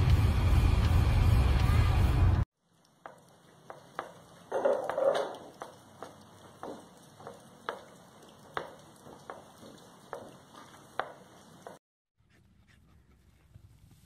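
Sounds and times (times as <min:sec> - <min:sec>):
horse scuffling: 0:03.0 - 0:11.8.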